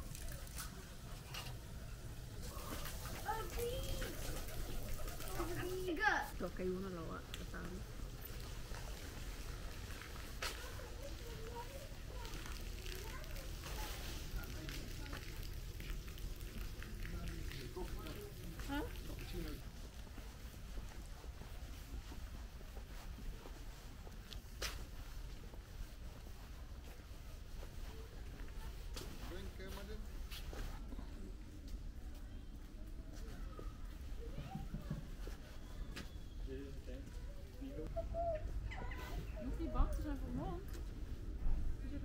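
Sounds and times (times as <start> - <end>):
distant people talking: 0.0 - 19.8, 30.8 - 42.0
faint distant voices: 0.0 - 20.4.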